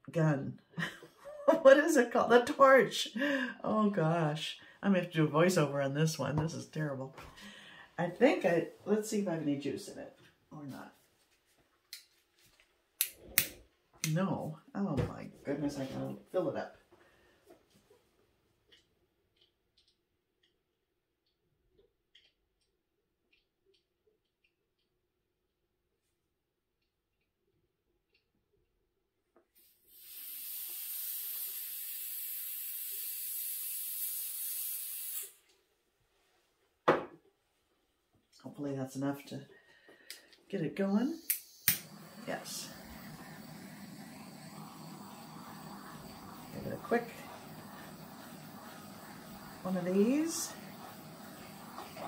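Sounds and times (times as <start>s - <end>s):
torch igniter clicks: 13.0s - 14.2s, 41.2s - 49.2s
butane gas hissing: 29.6s - 35.4s, 41.1s - 52.0s.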